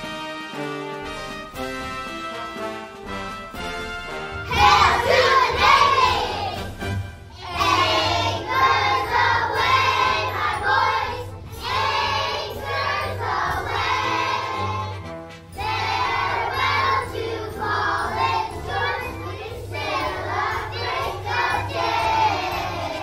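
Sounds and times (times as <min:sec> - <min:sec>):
children singing in unison: 0:04.5 - 0:06.7, 0:07.4 - 0:15.0, 0:15.6 - 0:23.0.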